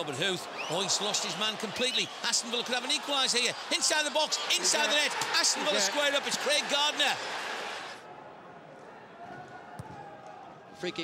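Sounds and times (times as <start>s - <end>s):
stadium crowd roaring: 0.0s - 11.0s.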